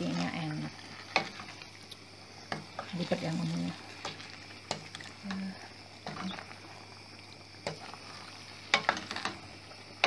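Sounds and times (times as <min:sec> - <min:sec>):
spoon stirring food in pot: 0:00.0 - 0:10.0.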